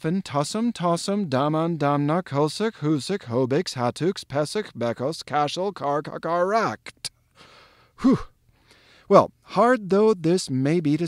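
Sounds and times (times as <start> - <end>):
man breathing in: 7.3 - 9.1
man sighing: 7.4 - 9.1.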